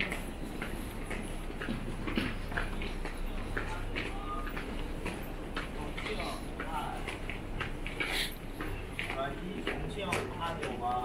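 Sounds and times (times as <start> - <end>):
crowd footsteps on hard floor: 0.0 - 11.0
steady low hum: 0.0 - 11.0.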